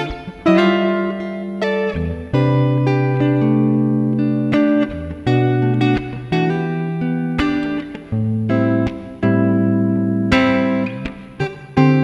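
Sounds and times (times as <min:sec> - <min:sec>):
fingerstyle electric guitar: 0:00.0 - 0:12.0.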